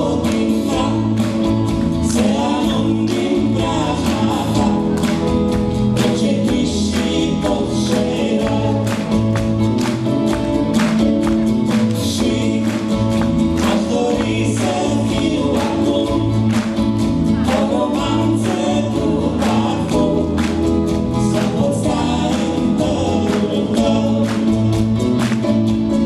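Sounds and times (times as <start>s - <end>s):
keyboard and guitar accompaniment: 0.0s - 26.0s.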